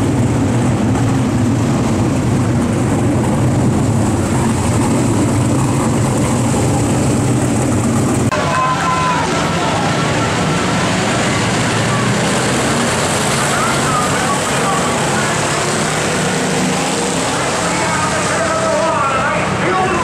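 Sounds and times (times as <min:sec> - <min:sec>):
racing car engines: 0:00.0 - 0:20.0
voices: 0:04.1 - 0:20.0.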